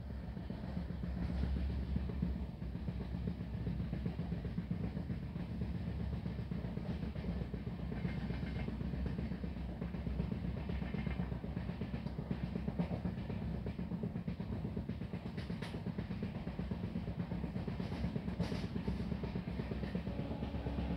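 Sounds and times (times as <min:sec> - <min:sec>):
train rumble inside carriage: 0:00.0 - 0:20.9.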